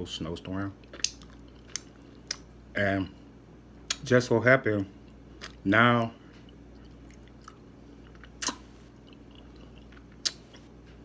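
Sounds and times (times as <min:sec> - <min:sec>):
person chewing food: 0:00.8 - 0:02.6, 0:04.8 - 0:11.0.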